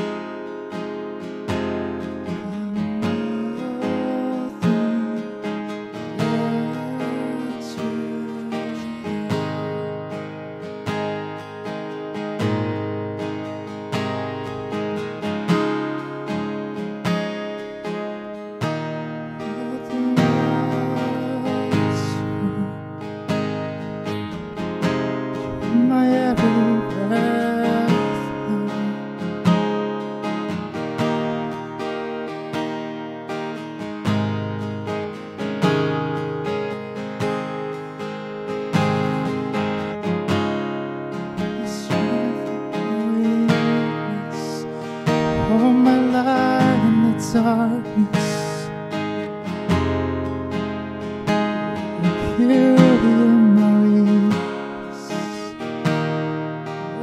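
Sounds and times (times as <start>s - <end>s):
acoustic guitar strumming: 0.0s - 57.0s
man singing: 2.4s - 10.0s, 19.4s - 22.8s, 25.6s - 29.1s, 41.4s - 48.8s, 52.0s - 55.6s.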